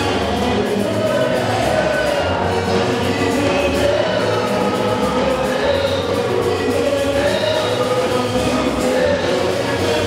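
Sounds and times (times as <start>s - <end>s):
choir singing gospel: 0.0s - 10.0s
musical backing: 0.0s - 10.0s.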